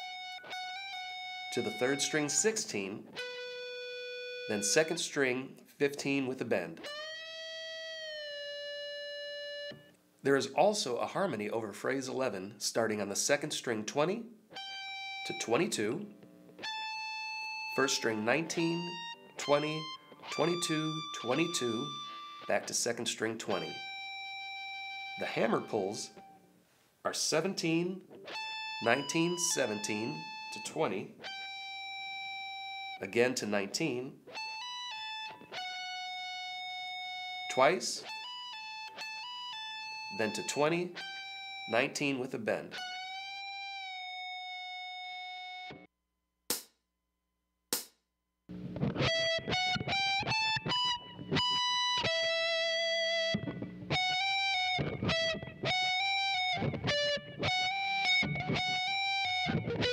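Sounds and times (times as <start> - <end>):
electric guitar note bending: 0.0 - 5.1, 6.8 - 9.9, 14.5 - 22.8, 23.4 - 26.4, 28.0 - 33.7, 34.3 - 45.9, 48.5 - 59.9
electric guitar hammer-on and pull-off: 48.5 - 59.9.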